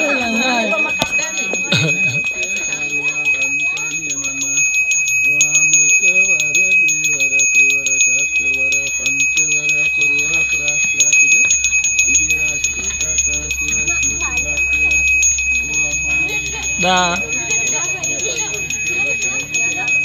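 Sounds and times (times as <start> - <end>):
hand bell ringing rapidly: 0.0 - 20.0
person chanting: 0.0 - 20.0.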